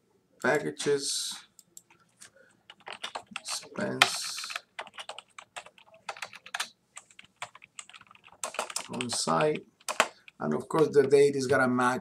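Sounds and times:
keyboard typing: 0:02.7 - 0:10.4.

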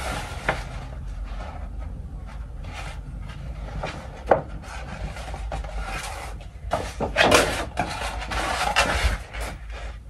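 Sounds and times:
paper poster rustling: 0:00.0 - 0:10.0.

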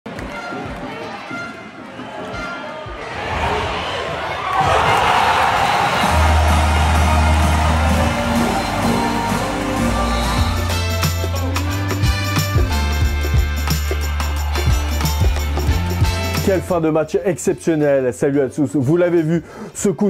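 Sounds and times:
crowd cheering loudly: 0:01.9 - 0:10.7, 0:13.6 - 0:16.2
background music with deep bass: 0:06.0 - 0:17.7.

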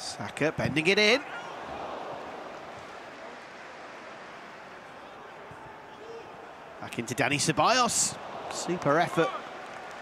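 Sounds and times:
stadium ambience: 0:00.0 - 0:10.0.

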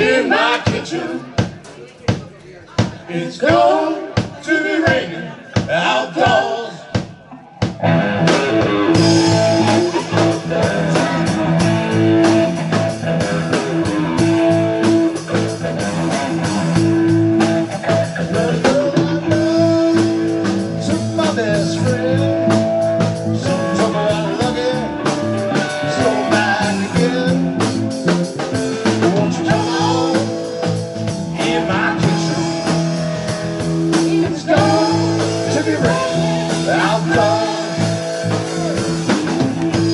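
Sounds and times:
blues-rock band playing: 0:00.0 - 0:39.9
bending electric guitar notes: 0:07.8 - 0:39.9.

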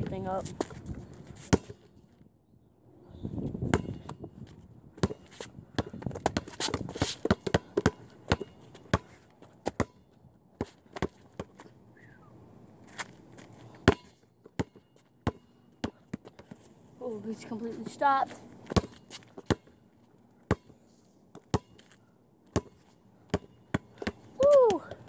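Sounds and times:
basketball bouncing on concrete: 0:03.7 - 0:04.2, 0:05.0 - 0:09.1, 0:10.6 - 0:11.5, 0:13.8 - 0:16.5, 0:18.7 - 0:19.7, 0:20.5 - 0:20.7, 0:21.4 - 0:21.8, 0:22.6 - 0:25.0.

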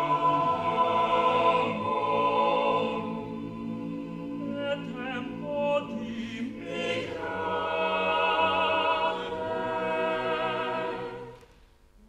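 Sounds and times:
choir singing held chords: 0:00.0 - 0:11.5.

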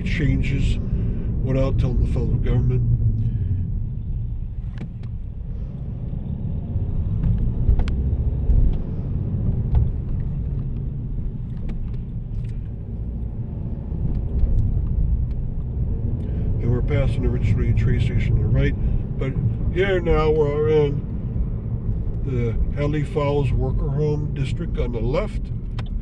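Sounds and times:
car interior road rumble: 0:00.0 - 0:26.0.

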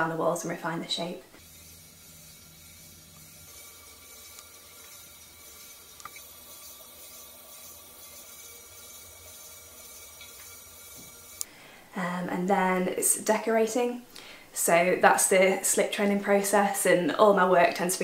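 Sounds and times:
pottery wheel motor hum: 0:00.0 - 0:11.5.

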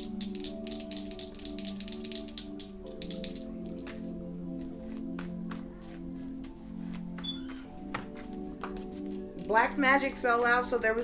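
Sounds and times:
cards being shuffled: 0:00.0 - 0:09.6
soft background music chords: 0:00.0 - 0:11.0.

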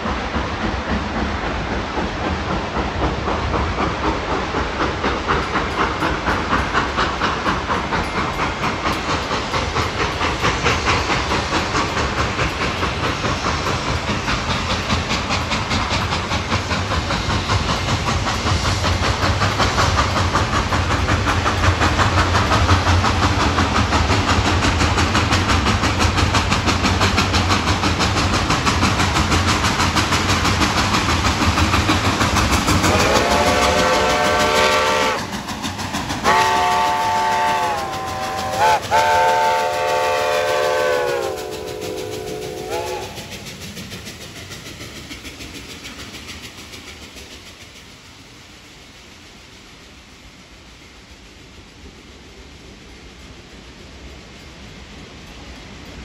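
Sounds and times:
steam hiss: 0:00.0 - 0:56.0
steam locomotive exhaust chuffs: 0:00.0 - 0:56.0
steam whistle blasts: 0:32.9 - 0:35.3, 0:36.2 - 0:43.3.

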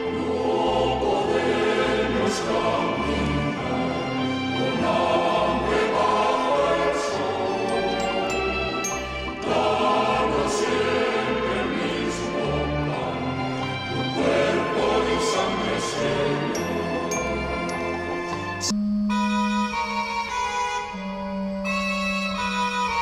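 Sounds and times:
slow sacred choral music: 0:00.0 - 0:18.8.

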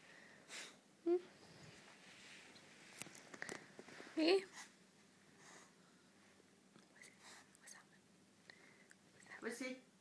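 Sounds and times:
soft hissing: 0:00.4 - 0:09.5.

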